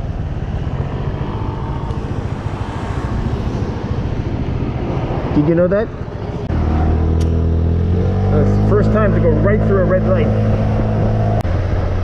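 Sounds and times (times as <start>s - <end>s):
motorcycle engine running: 0.0s - 11.8s.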